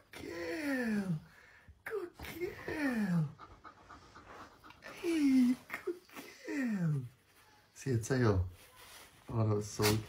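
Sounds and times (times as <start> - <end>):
dog panting: 2.2 - 6.3.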